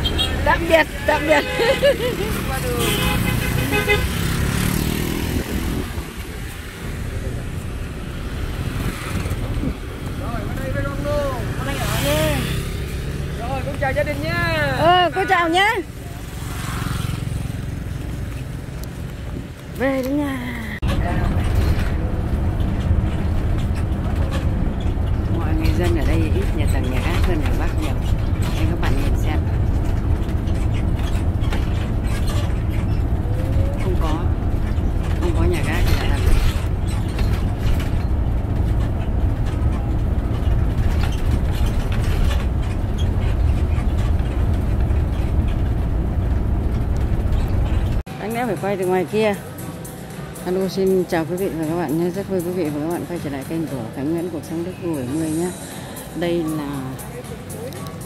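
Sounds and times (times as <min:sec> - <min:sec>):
bus diesel engine rumbling: 0:00.0 - 0:58.0.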